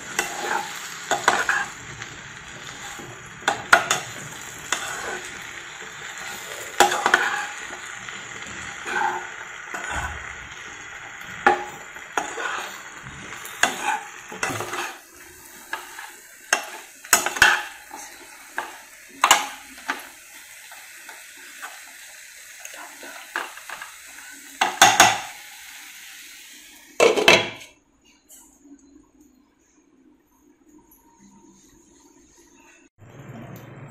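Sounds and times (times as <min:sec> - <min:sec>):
spatula scraping a pan: 0:00.0 - 0:10.4, 0:11.2 - 0:20.1
vegetables sizzling: 0:00.0 - 0:27.8.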